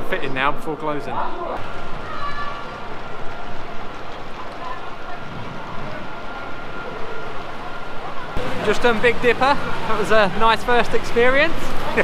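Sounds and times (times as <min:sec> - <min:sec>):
dense steady background noise: 0:00.0 - 0:12.0.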